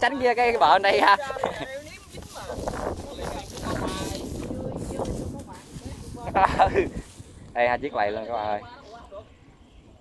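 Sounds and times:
people talking: 0.0s - 7.0s.

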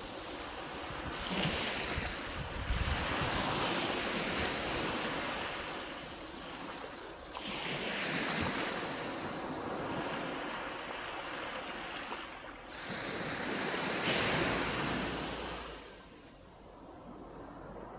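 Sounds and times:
small waves breaking on a beach: 0.0s - 17.9s
wind buffeting microphone: 0.7s - 5.8s.

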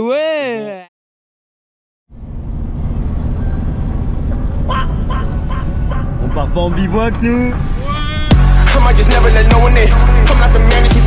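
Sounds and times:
car interior road and engine rumble: 2.1s - 11.0s.

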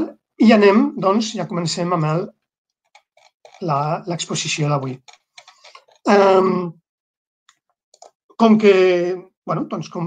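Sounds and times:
computer mouse clicks: 2.8s - 3.7s, 4.8s - 6.1s, 7.5s - 8.2s.

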